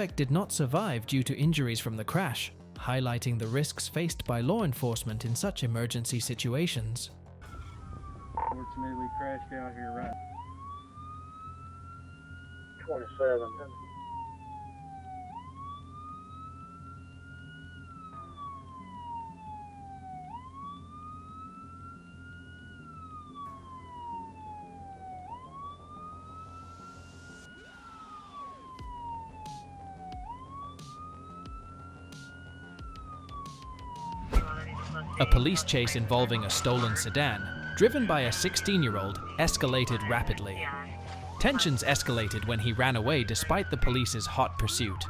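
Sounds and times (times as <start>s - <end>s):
police siren wailing: 7.4s - 45.0s.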